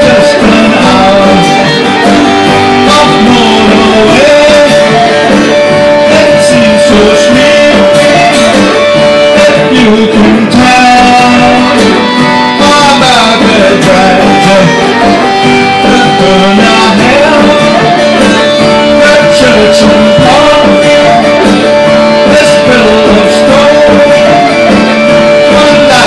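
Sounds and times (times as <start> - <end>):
guitars playing live: 0.0 - 26.0
man singing: 0.0 - 26.0.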